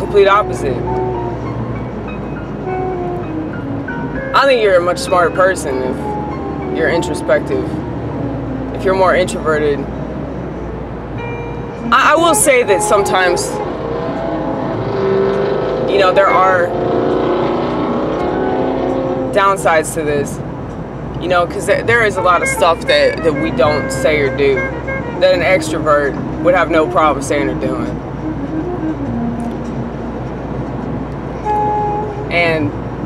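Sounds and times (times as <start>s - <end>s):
music of long held notes: 0.0s - 9.6s, 10.5s - 19.4s, 21.9s - 33.0s
car rumbling from inside: 0.0s - 33.0s.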